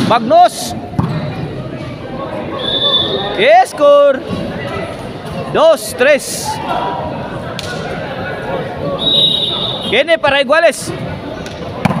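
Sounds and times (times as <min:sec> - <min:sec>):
crowd chatter: 0:00.0 - 0:12.0
referee's whistle: 0:02.6 - 0:03.4, 0:09.0 - 0:10.1.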